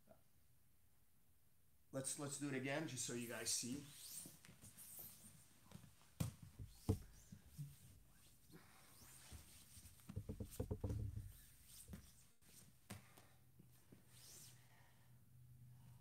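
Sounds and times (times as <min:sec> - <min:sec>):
soft thumps and shuffling: 0:05.7 - 0:08.1, 0:09.2 - 0:12.2.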